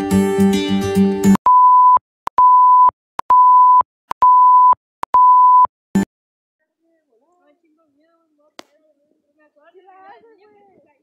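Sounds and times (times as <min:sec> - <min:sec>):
high beeps: 0:01.4 - 0:06.1.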